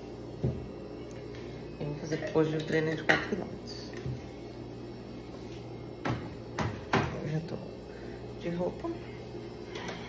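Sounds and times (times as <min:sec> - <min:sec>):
refrigerator hum: 0:00.0 - 0:10.0
items knocking on fridge shelves: 0:06.0 - 0:07.2.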